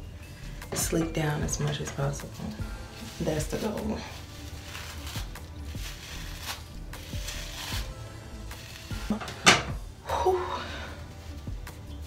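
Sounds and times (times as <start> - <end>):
hairbrush scraping through hair: 2.2 - 9.2.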